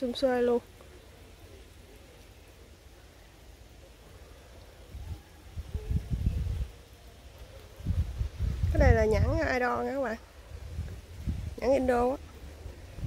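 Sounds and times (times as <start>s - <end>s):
wind buffeting microphone: 4.9s - 6.8s, 7.7s - 13.0s.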